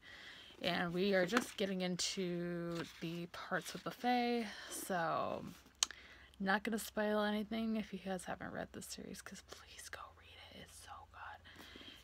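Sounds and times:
woman whispering: 9.3 - 11.5.

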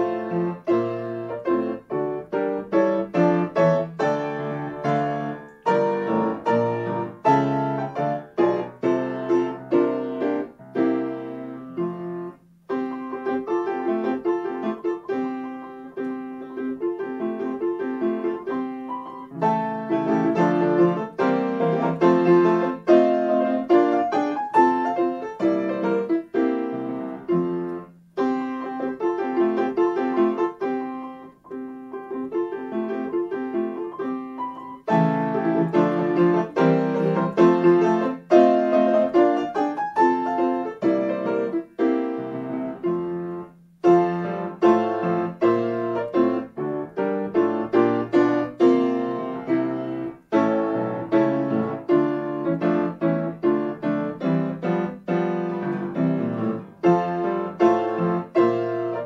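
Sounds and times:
grand piano playing a march: 0.0 - 59.0.

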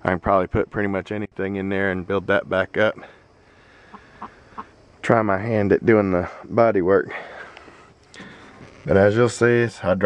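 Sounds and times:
faint short calls: 3.0 - 4.9.

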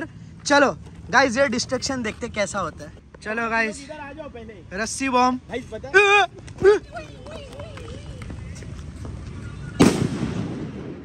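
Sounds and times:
footsteps running on pavement: 5.4 - 9.7.

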